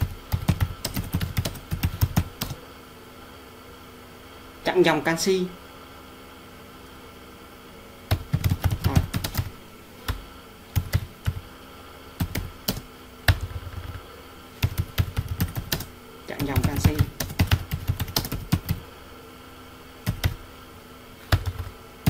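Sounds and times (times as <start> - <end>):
computer keyboard typing: 0.0 - 2.6, 8.1 - 11.5, 12.2 - 14.0, 14.6 - 18.8, 20.0 - 20.4, 21.3 - 21.8.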